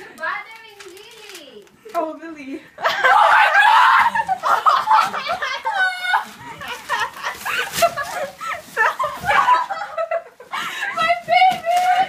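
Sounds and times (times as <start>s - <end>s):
loud high-pitched laughter: 2.8s - 10.7s.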